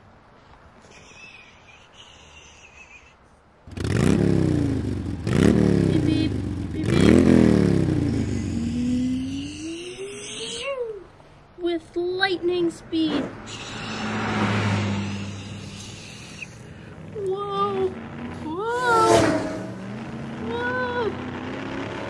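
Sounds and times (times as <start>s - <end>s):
person imitating engine revving: 3.7s - 10.9s, 13.1s - 22.0s.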